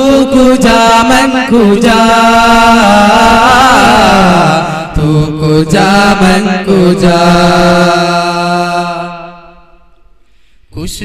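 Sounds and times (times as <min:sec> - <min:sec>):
men singing in unison: 0:00.0 - 0:09.4.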